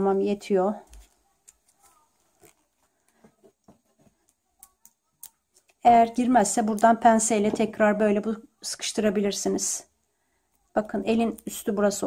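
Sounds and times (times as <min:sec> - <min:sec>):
soft ticks and rustles of wire: 0:00.8 - 0:05.9, 0:10.2 - 0:11.7.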